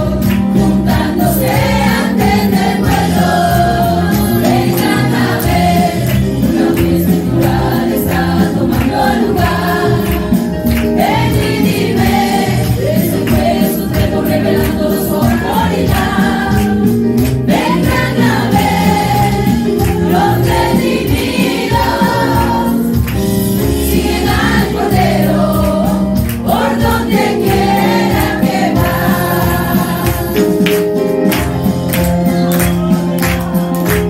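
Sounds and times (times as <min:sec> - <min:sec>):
women singing a gospel hymn: 0:00.0 - 0:30.6
instrumental backing: 0:00.0 - 0:34.0.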